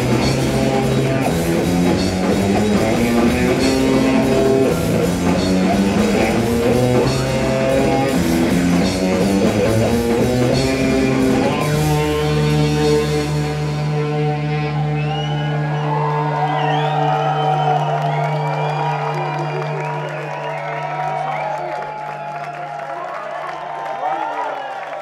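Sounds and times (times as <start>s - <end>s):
rock band droning low notes: 0.0s - 21.3s
audience cheering and whooping: 14.6s - 25.0s.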